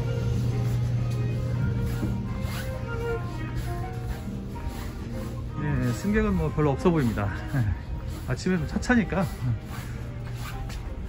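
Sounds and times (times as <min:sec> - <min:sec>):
soft background music: 0:00.0 - 0:11.0
train carriage low hum: 0:00.0 - 0:11.0.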